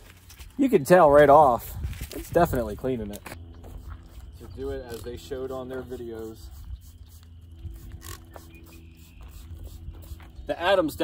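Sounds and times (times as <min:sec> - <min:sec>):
spray bottle spritz: 0:06.0 - 0:10.4.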